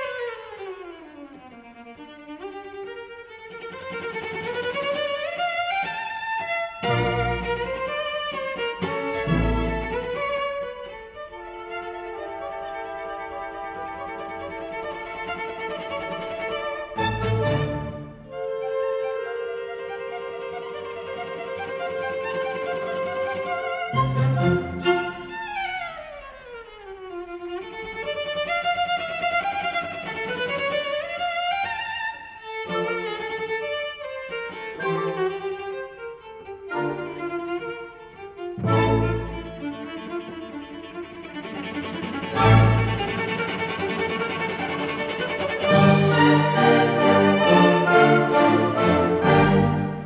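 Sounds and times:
solo cello melody: 0.0s - 50.0s
string orchestra: 0.0s - 50.0s.

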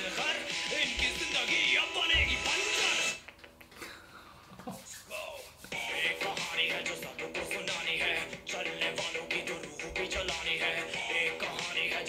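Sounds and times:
rapping over hip-hop beat: 0.0s - 3.2s, 5.0s - 12.0s.

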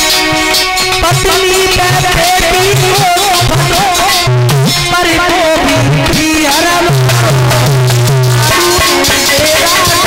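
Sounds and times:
drums: 0.0s - 10.0s
man singing into a microphone: 0.9s - 10.0s.

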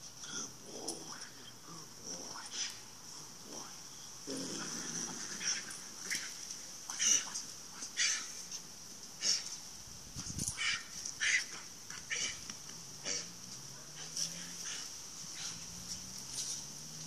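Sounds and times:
high-pitched hiss: 0.0s - 17.0s.

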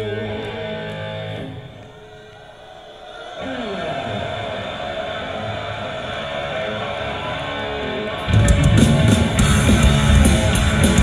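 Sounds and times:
heavy metal band playing live: 3.4s - 11.0s.

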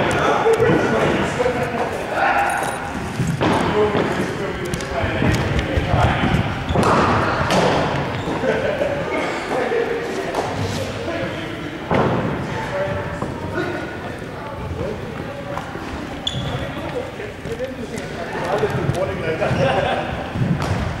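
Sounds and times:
chatter of voices echoing: 0.0s - 21.0s
balls bouncing on floor: 3.1s - 8.4s, 15.1s - 21.0s.

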